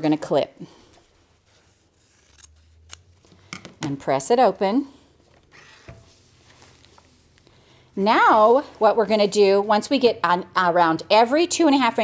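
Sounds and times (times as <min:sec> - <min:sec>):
scissors snipping fabric: 0:02.1 - 0:03.1.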